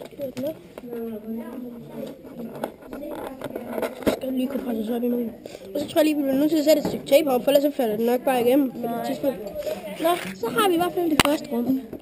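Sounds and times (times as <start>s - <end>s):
young voices talking: 0.0s - 12.0s.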